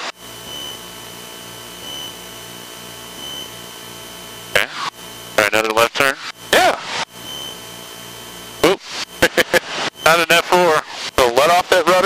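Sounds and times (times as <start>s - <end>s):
person laughing: 9.2s - 9.7s.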